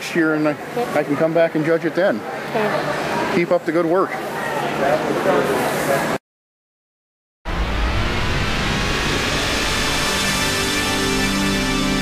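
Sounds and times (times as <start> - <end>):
closing theme music: 7.5 - 12.0
deep rumble: 7.5 - 12.0
sweeping whoosh: 7.5 - 12.0.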